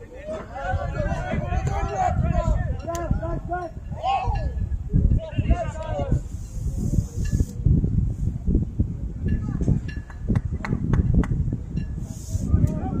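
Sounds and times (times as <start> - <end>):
people shouting and calling out: 0.0 - 7.2, 12.1 - 13.0.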